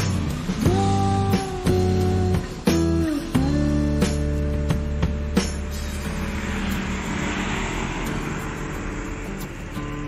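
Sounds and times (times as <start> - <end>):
background guitar music: 0.0 - 10.0
bus engine and road noise: 0.0 - 10.0.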